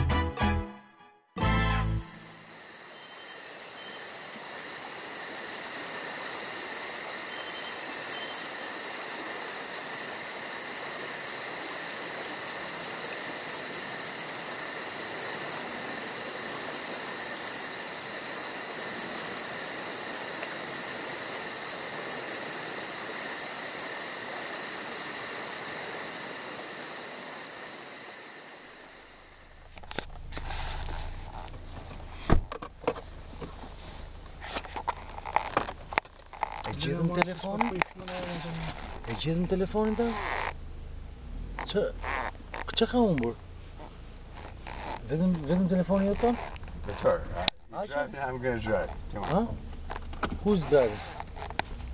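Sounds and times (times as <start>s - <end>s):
crickets trilling: 2.0s - 31.7s, 34.4s - 51.9s.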